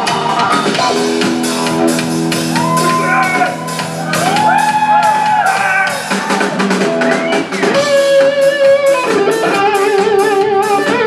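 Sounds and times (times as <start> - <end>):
drums: 0.0 - 11.0
electric guitar: 0.0 - 11.0
shouting: 2.5 - 7.8.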